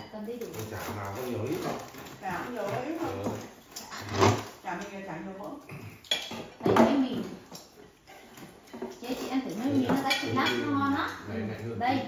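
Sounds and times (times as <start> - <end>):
dishes and cutlery clinking: 5.7 - 11.4.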